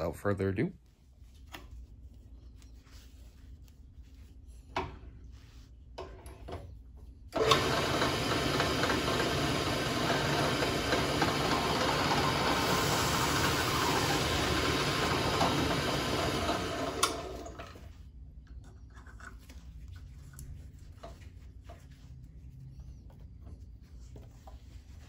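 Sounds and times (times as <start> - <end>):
drill press running: 7.3 - 17.9.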